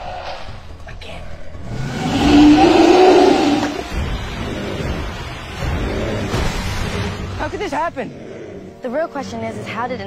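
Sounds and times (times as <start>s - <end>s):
giant monster roar: 1.6s - 7.3s.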